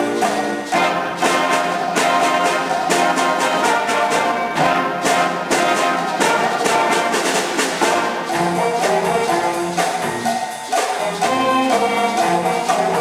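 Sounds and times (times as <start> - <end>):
brass and saxophones: 0.0 - 13.0
jazz band playing latin-rock: 0.0 - 13.0
steady drum beat: 0.0 - 13.0.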